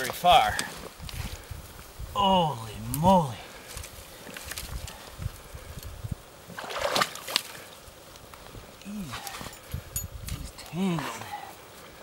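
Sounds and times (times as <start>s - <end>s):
stream water sloshing and splashing: 6.4s - 7.8s.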